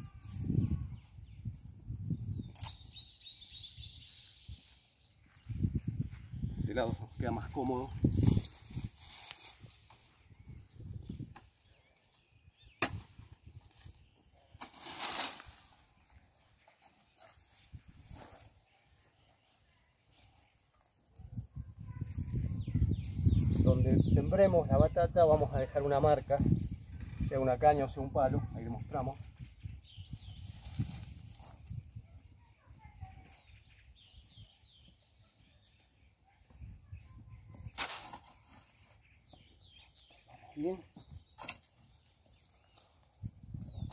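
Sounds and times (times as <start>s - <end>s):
hoe chopping through soil: 12.8s - 13.4s, 14.5s - 15.7s.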